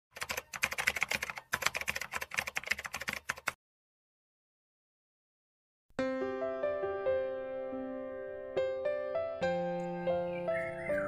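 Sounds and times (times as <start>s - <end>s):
keyboard typing: 0.1s - 3.6s.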